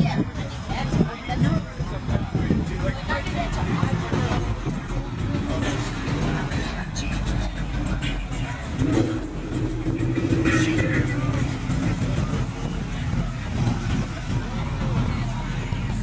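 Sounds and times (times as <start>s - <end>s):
crowd chatter: 0.0s - 16.0s
cars driving past: 3.8s - 16.0s.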